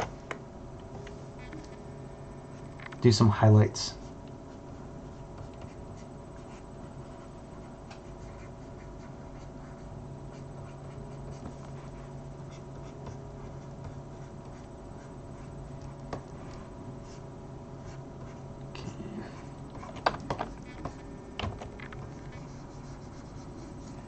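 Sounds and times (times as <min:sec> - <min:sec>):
steady electrical hum: 0:00.0 - 0:24.0
stylus scratching on tablet: 0:04.0 - 0:24.0.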